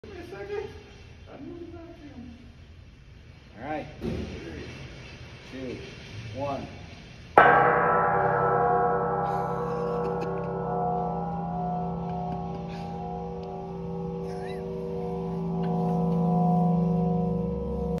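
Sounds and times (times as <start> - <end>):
low hum: 7.4 - 18.0
metal gong ringing: 7.4 - 18.0
wooden mallet striking gong: 7.4 - 18.0.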